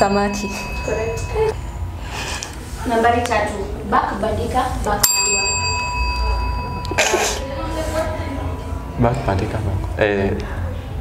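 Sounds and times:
desk service bell ringing: 0.0s - 2.2s, 5.0s - 9.6s.

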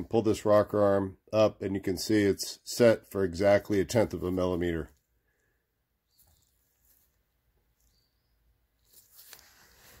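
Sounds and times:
faint handling rustle: 6.1s - 8.1s, 8.7s - 10.0s.

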